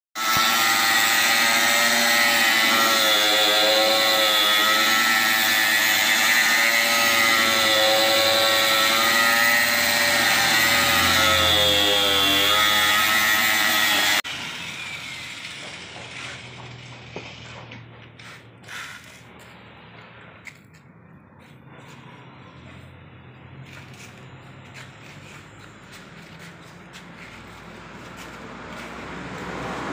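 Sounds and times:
angle grinder whining: 0.2s - 17.9s.

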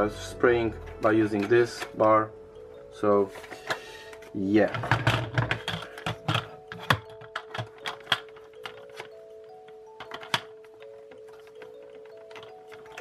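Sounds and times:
soft background music: 0.0s - 13.0s
plastic mop parts clicking: 3.3s - 9.1s, 10.0s - 13.0s.

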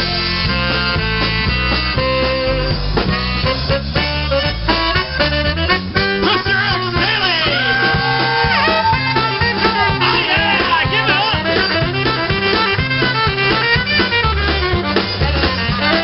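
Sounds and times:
accordion: 0.0s - 16.0s
bass guitar: 0.0s - 16.0s
drums: 0.0s - 16.0s
polka band playing: 0.0s - 16.0s
saxophone long held notes: 0.0s - 16.0s.

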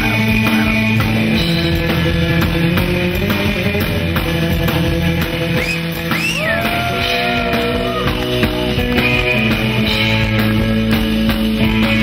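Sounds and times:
surf rock band playing: 0.0s - 12.0s.

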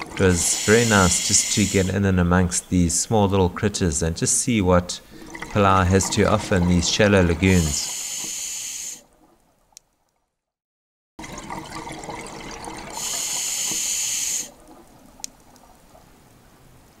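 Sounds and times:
watery rushing hiss: 0.0s - 2.1s, 5.0s - 9.0s, 12.6s - 14.7s.

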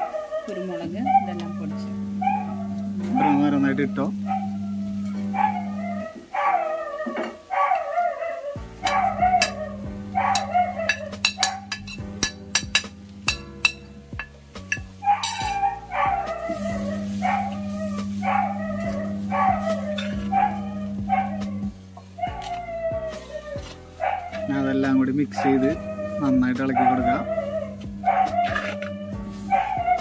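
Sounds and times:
dog barking: 0.0s - 1.5s, 2.1s - 11.9s, 15.0s - 23.4s, 24.0s - 30.0s
background music: 0.0s - 30.0s.

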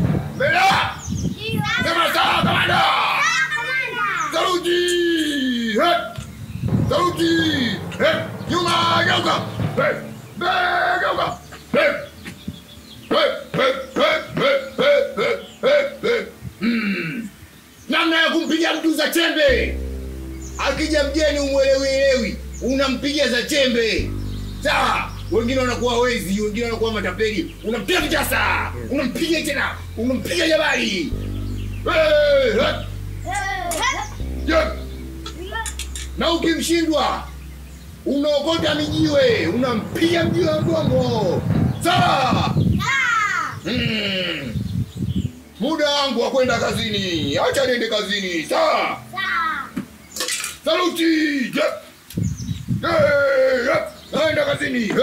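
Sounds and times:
man shouting sharp calls: 0.4s - 1.0s, 6.9s - 12.1s, 13.1s - 16.4s.

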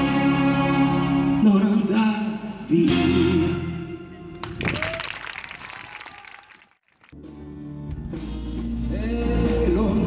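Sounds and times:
audience applause: 4.4s - 7.2s.

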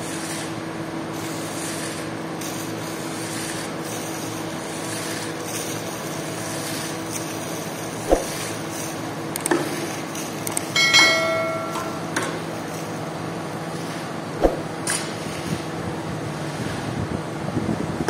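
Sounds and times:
steady machine hum: 0.0s - 18.0s
short metallic ring: 10.7s - 12.6s.

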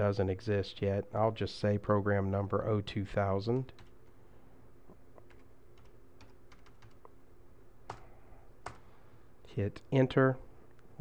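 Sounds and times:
low steady hum: 0.0s - 11.0s
computer keyboard clicks: 5.2s - 7.1s.

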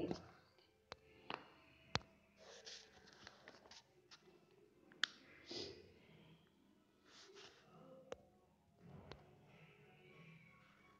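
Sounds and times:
soft breathy sound: 4.4s - 8.2s.

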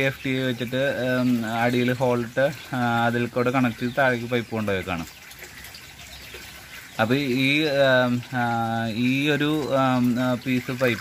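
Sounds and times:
faint water trickle: 0.0s - 11.0s.

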